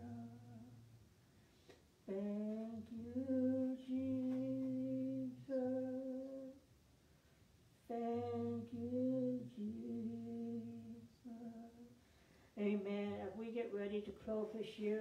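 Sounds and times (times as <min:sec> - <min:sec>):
voices singing slow song: 0:00.0 - 0:01.0, 0:02.0 - 0:06.7, 0:07.8 - 0:13.5.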